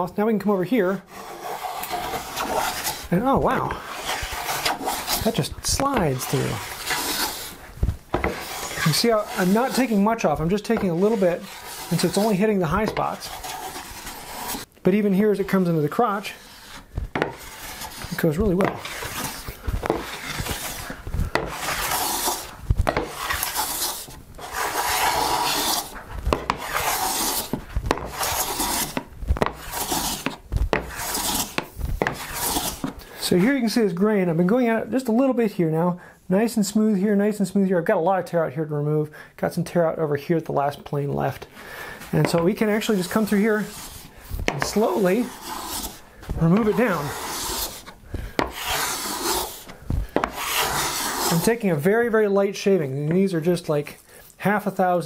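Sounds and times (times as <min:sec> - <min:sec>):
hand plane shearing swishes: 0:01.1 - 0:14.7, 0:16.2 - 0:33.0, 0:42.2 - 0:51.6
plane knocking on wood: 0:50.1 - 0:51.3.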